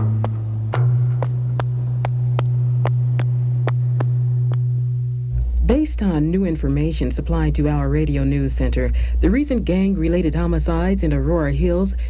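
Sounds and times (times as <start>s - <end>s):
ticking pulse: 0.0s - 5.5s
low synthesizer note: 0.0s - 6.4s.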